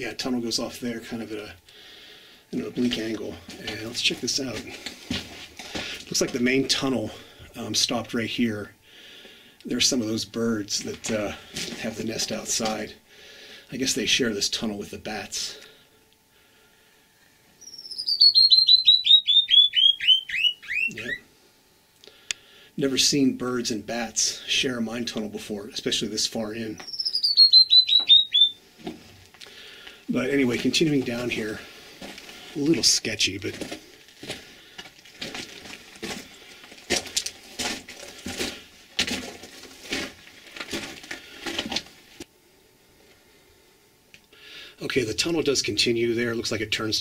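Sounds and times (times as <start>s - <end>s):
footsteps crunching on gravel: 2.6s - 6.9s, 10.7s - 12.9s, 28.8s - 42.3s
bird chirping downward: 17.6s - 21.2s, 26.8s - 28.6s.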